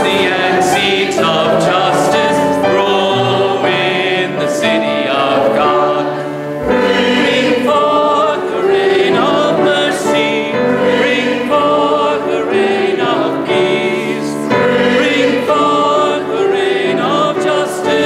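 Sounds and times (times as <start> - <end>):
choir and congregation singing hymn: 0.0 - 18.0
pipe organ: 0.0 - 18.0.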